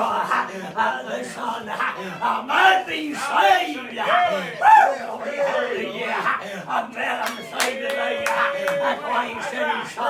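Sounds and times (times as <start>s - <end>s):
men calling out fervently: 0.0s - 10.0s
sharp hand claps: 7.2s - 8.8s.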